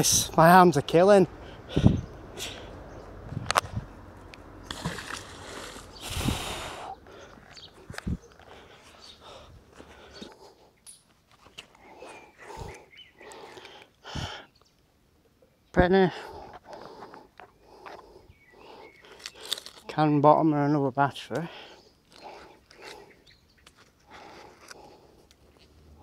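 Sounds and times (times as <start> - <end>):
breath-like rushing noise: 1.4 - 2.9, 5.3 - 7.3.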